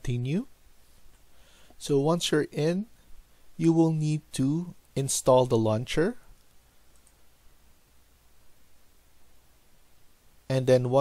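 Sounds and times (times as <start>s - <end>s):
computer mouse click: 6.9s - 7.2s.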